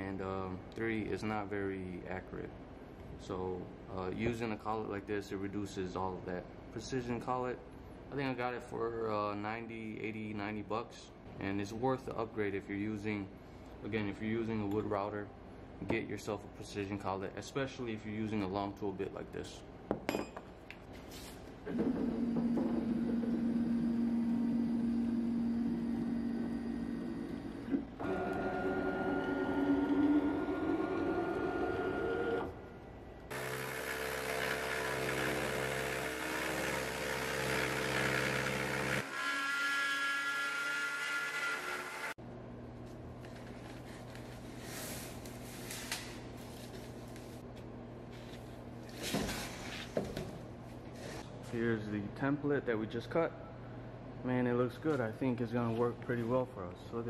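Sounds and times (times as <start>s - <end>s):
router spindle whining while cutting: 33.3s - 42.2s.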